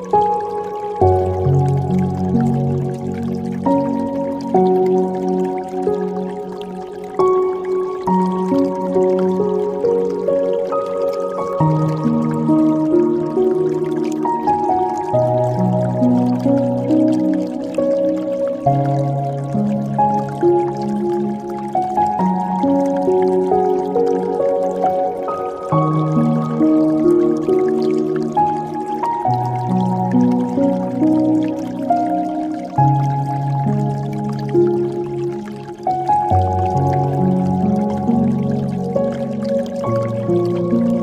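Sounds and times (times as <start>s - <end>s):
dripping and trickling water: 0.0s - 41.0s
soft meditation piano music: 0.0s - 41.0s.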